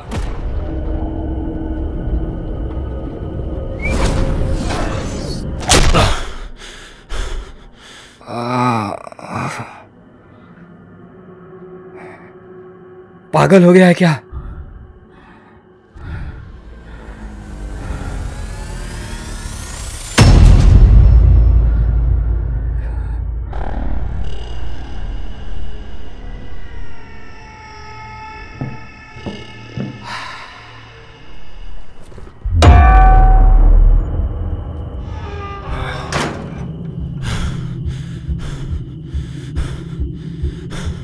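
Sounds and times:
eerie drone tones: 0.0 - 41.0.

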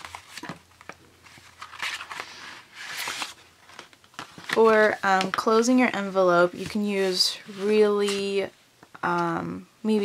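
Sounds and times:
paper rustling and sliding: 0.0 - 5.6, 6.5 - 8.4.

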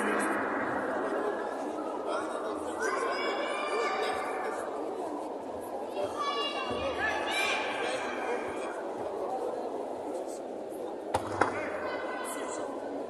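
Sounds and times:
hall crowd noise: 0.0 - 13.0.

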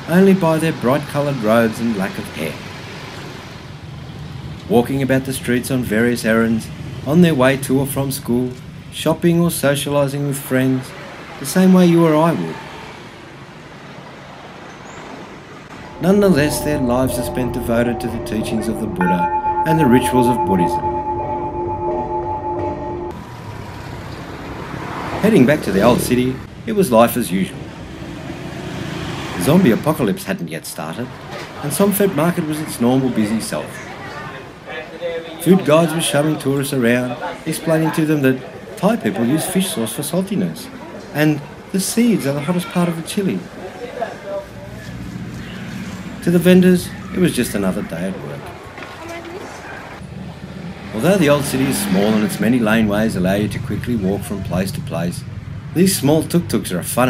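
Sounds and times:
street traffic noise: 0.0 - 57.0
indistinct voices: 15.7 - 23.2
background music held tones: 15.8 - 23.2.

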